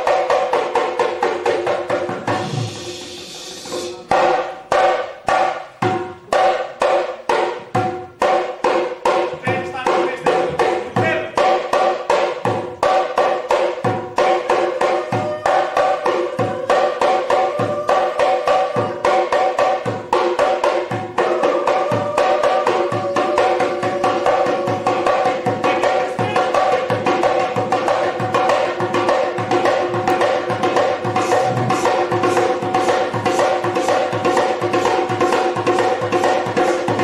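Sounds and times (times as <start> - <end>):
barrel drums fast rhythm: 0.0 - 37.0
deep bass drum thumps: 31.3 - 32.2.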